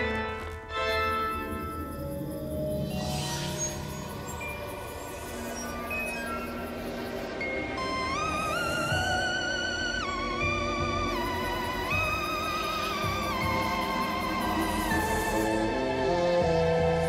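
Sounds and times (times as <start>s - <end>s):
spooky background music: 0.0s - 17.0s.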